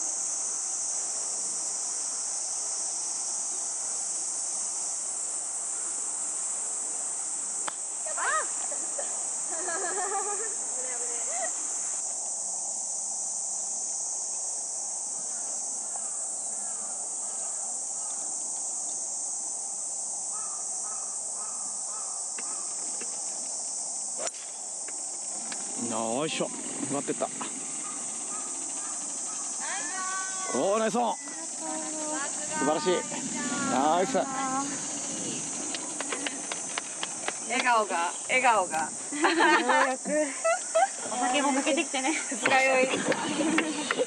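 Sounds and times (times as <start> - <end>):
insects droning: 0.0 - 44.0
short insect calls: 0.0 - 44.0
excited voices: 8.1 - 8.9, 29.6 - 36.6.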